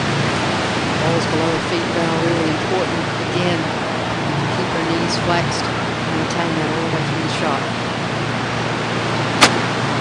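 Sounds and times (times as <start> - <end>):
golf club striking ball: 9.4 - 9.8.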